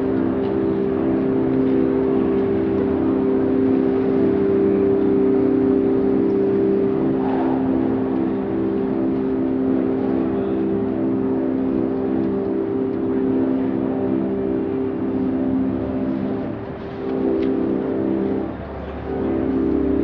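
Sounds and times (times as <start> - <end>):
low mechanical hum: 0.0 - 20.0.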